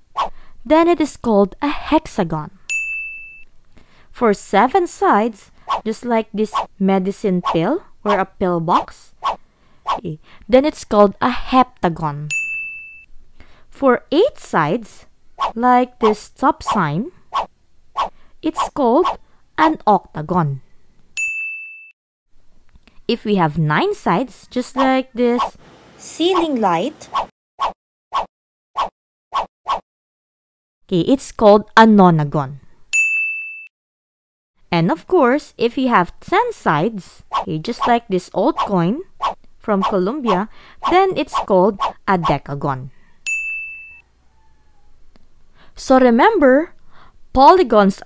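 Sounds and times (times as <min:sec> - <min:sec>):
bright ding chime: 0:02.7 - 0:03.4, 0:12.3 - 0:13.1, 0:21.2 - 0:21.9, 0:43.3 - 0:44.0.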